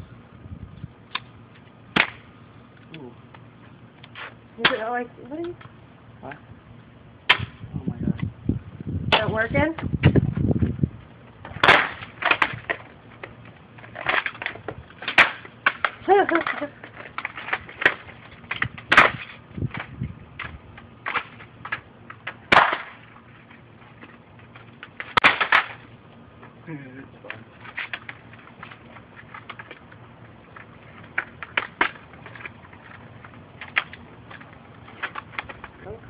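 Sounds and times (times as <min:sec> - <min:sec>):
pieces clattering on concrete: 0:13.8 - 0:19.1
plastic cracking: 0:27.3 - 0:35.8.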